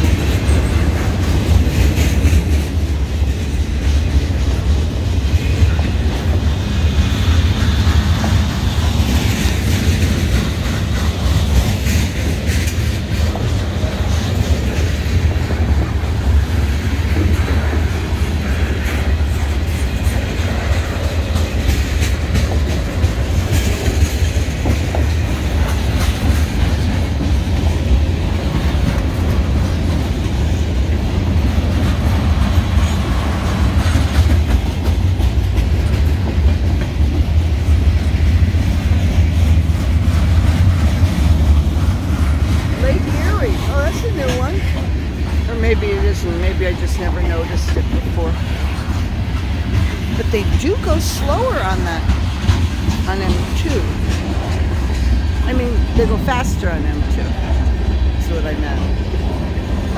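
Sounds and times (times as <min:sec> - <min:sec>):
freight train rumbling: 0:00.0 - 0:59.9
train wheels clickety-clack: 0:00.0 - 0:59.9.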